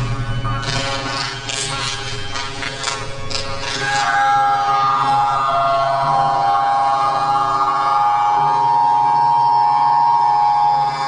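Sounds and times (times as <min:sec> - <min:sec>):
man's high-pitched wailing scream: 0:04.0 - 0:11.0.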